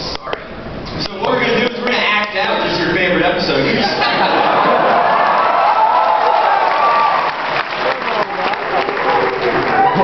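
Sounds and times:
audience clapping: 0:04.6 - 0:10.0.

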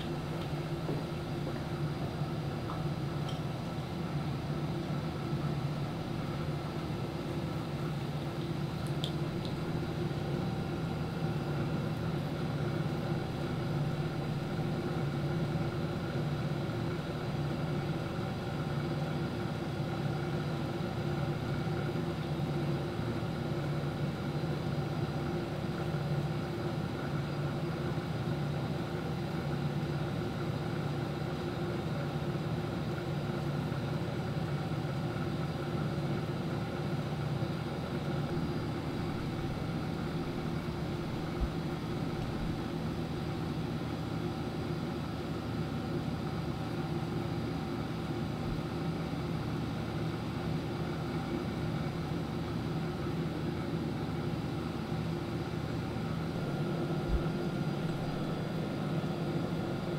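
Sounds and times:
machine hum with steady tones: 0:00.0 - 0:59.9.

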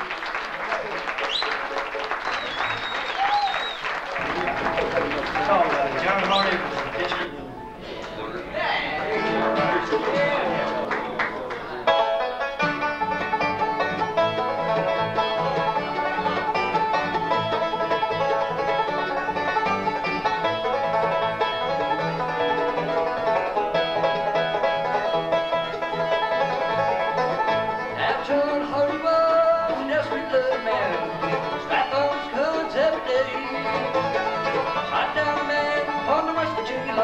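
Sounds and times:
guitar: 0:01.0 - 0:37.0
banjo lead: 0:04.1 - 0:37.0
mandolin: 0:04.1 - 0:37.0
upright bass: 0:08.2 - 0:37.0
fiddle: 0:09.0 - 0:37.0.

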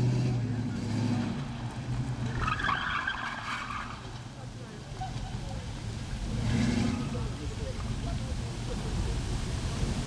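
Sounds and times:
car engine revving: 0:00.0 - 0:04.2, 0:05.8 - 0:07.6
background voices: 0:04.0 - 0:10.0.

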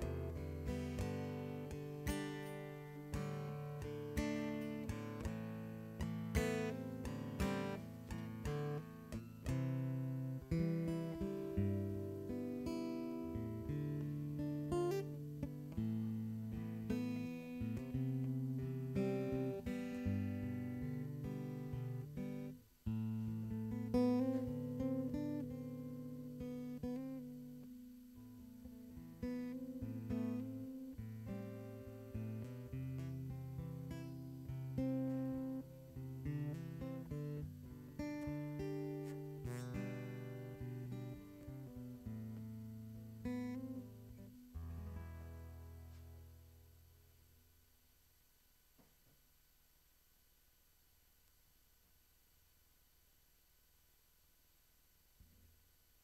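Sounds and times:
acoustic guitar music: 0:00.0 - 0:47.2.

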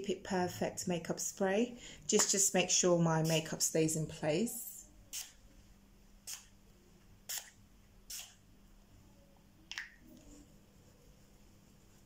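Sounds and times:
spray bottle hiss: 0:05.1 - 0:05.4, 0:06.3 - 0:06.5, 0:07.3 - 0:08.4.

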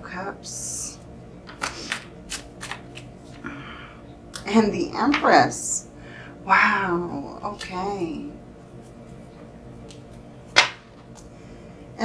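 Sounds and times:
card snapping from deck: 0:01.6 - 0:03.1.

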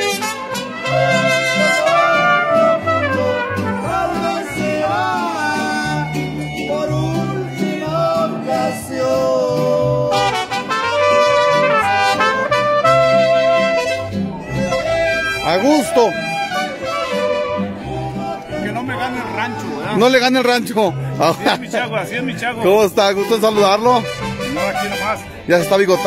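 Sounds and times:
trumpets playing melody: 0:00.0 - 0:06.8, 0:10.1 - 0:21.6, 0:22.8 - 0:26.0
strummed guitars: 0:00.0 - 0:26.0
plucked bass line: 0:11.0 - 0:26.0.

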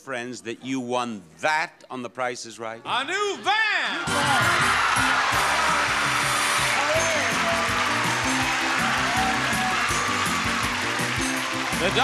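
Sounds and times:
upbeat game show music: 0:03.9 - 0:12.0
audience cheering and applauding: 0:04.0 - 0:12.0.

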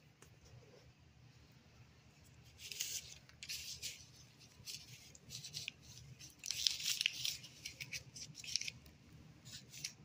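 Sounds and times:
paper pages rustling: 0:02.4 - 0:10.0.

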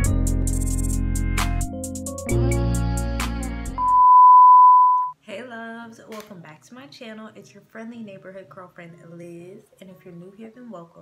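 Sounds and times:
intro music with a beat: 0:00.0 - 0:04.0
steady test tone beep: 0:03.8 - 0:05.2.

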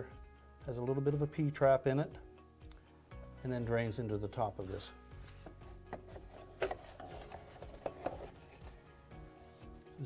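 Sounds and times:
soft background music: 0:00.0 - 0:10.0
plastic knocking and scraping on metal: 0:05.4 - 0:08.4.

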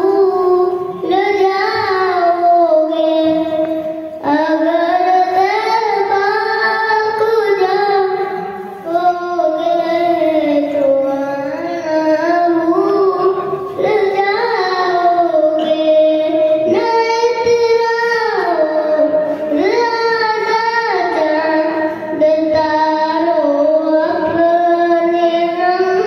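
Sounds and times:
boy singing unaccompanied: 0:00.0 - 0:26.0.

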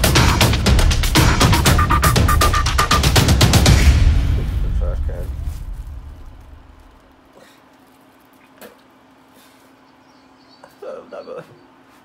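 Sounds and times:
music: 0:00.0 - 0:06.9.

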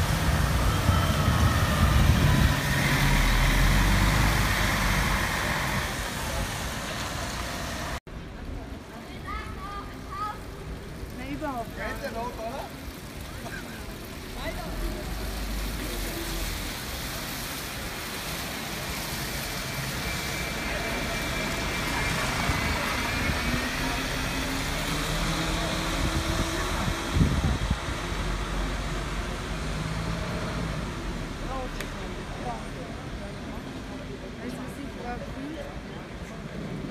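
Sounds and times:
bus passing and pulling away: 0:00.0 - 0:36.9.

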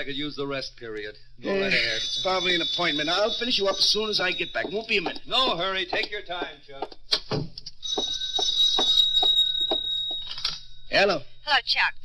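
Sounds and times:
footsteps on floor: 0:04.6 - 0:10.3
telephone bell ringing: 0:07.8 - 0:10.6.

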